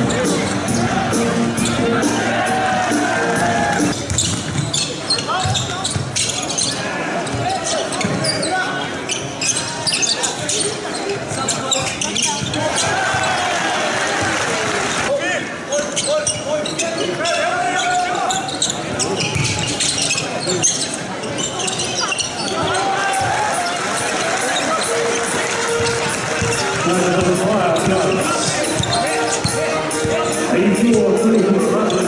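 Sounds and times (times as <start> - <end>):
background music: 0.0 - 4.0, 24.7 - 32.0
sneakers squeaking: 1.5 - 2.0, 3.7 - 13.6, 15.8 - 32.0.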